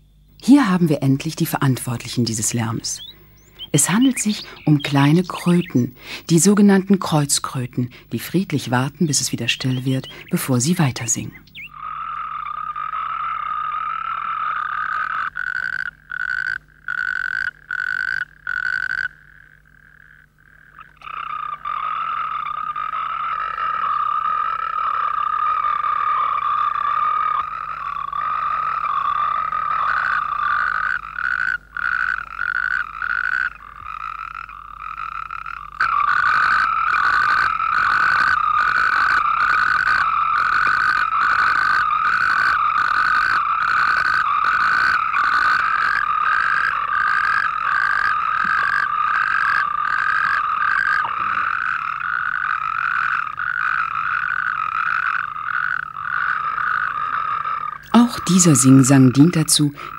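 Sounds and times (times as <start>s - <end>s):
nearby toad pulsing trill: 0.0s - 59.9s
toads trilling in chorus: 0.0s - 59.9s.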